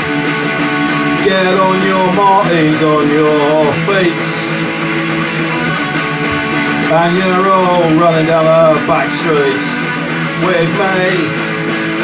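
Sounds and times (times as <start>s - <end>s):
electric guitar strumming chords: 0.0s - 12.0s
person singing punk song: 0.0s - 12.0s.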